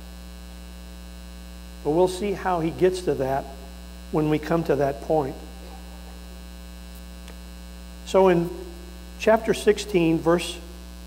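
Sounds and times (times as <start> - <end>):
electrical mains hum: 0.0 - 11.0
man speaking: 1.9 - 6.2, 8.0 - 10.7.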